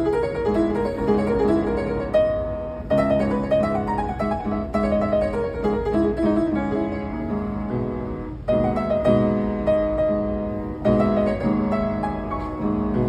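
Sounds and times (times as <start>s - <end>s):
solo piano melody: 0.0s - 13.0s.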